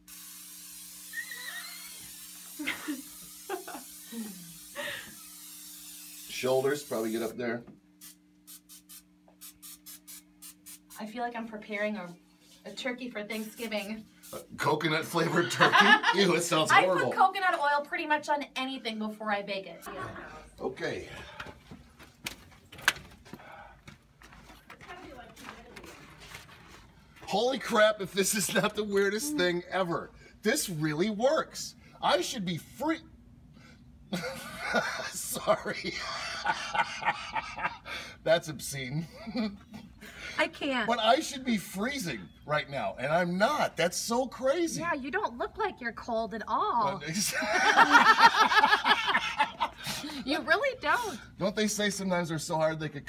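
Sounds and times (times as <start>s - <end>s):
aerosol spray hissing: 0.0s - 7.4s, 8.0s - 11.0s, 13.3s - 14.5s.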